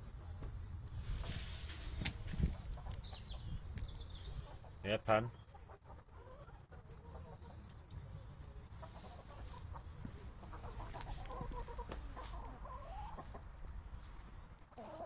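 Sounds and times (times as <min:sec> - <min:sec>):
hens clucking: 0:02.4 - 0:03.6, 0:04.2 - 0:07.7, 0:08.6 - 0:13.8, 0:14.7 - 0:15.0.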